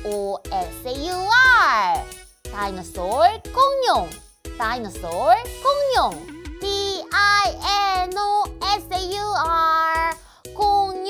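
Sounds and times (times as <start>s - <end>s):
light backing music: 0.0s - 11.0s.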